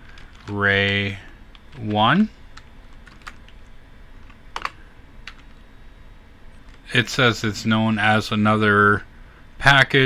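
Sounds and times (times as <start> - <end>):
faint room hum: 0.0 - 10.0
keyboard keys clicking: 2.6 - 3.6, 4.2 - 5.5.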